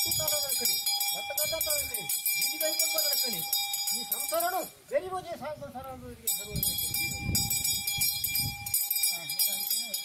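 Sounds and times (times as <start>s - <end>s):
brass hand bell ringing: 0.0s - 4.8s, 6.3s - 10.0s.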